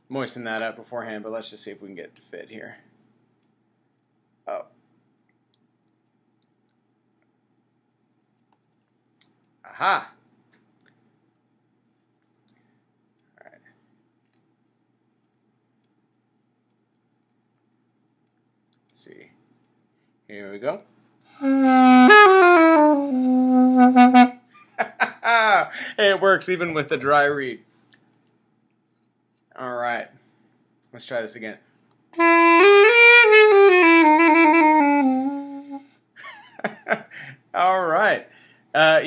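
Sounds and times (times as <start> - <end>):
reedy clarinet-like notes: 21.4 - 24.4, 32.2 - 35.8.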